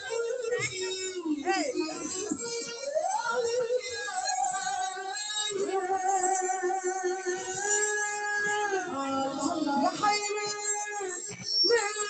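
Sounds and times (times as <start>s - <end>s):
person singing over music: 0.0s - 12.0s.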